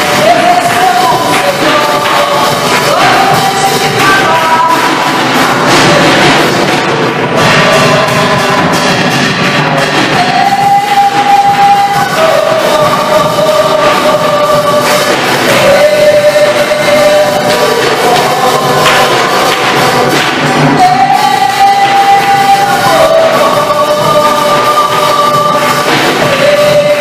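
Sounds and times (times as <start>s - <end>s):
hand clapping: 0.0s - 27.0s
worship song with voices singing: 0.0s - 27.0s.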